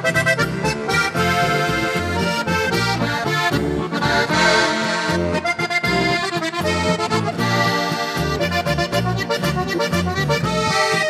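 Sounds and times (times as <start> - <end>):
button accordion folk melody: 0.0 - 11.0
low bass notes: 0.0 - 11.0.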